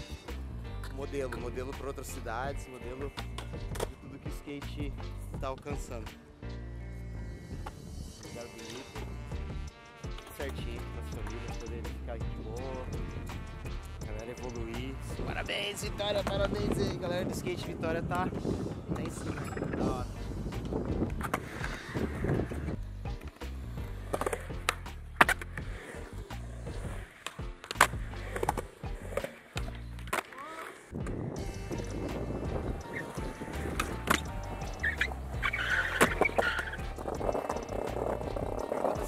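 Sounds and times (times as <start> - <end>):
skateboard wheels rolling on concrete: 0.0 - 6.4, 7.0 - 39.0
skateboard clacking on ground: 23.2 - 26.2, 26.8 - 31.1, 32.9 - 39.0.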